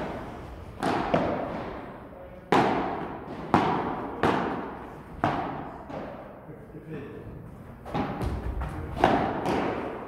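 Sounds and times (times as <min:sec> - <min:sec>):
padel ball struck by rackets: 0:02.5 - 0:06.2, 0:07.9 - 0:10.0.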